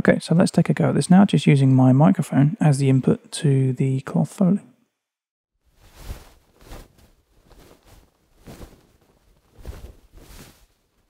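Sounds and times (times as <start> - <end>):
cloth rustling swishes: 5.7 - 11.0.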